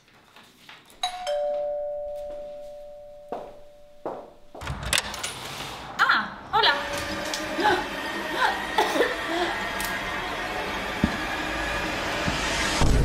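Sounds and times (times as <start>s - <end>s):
two-note doorbell chime: 1.0s - 4.5s
door unlatched and opened: 4.6s - 6.0s.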